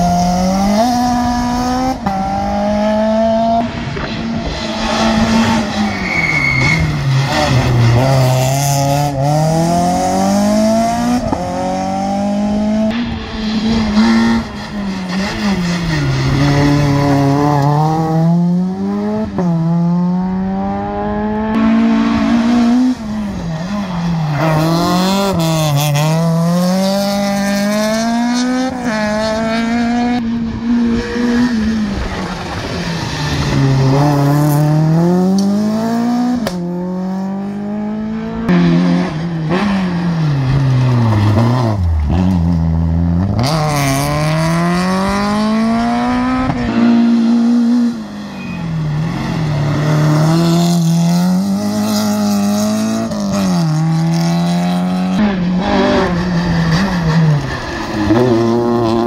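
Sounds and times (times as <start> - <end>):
rally car engines revving: 0.0 - 59.0.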